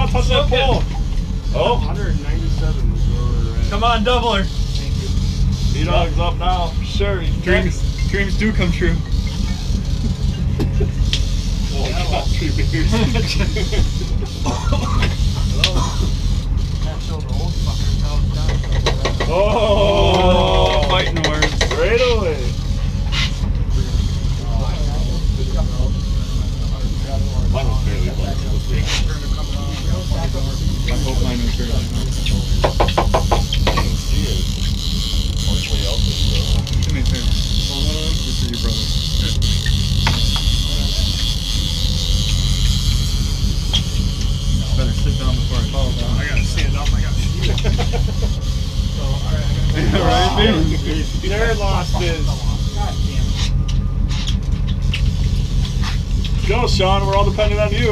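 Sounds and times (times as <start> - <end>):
boat engine droning: 0.0 - 57.9.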